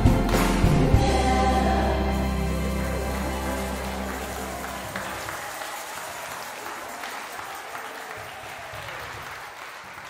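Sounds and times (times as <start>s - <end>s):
group applause: 0.0s - 10.0s.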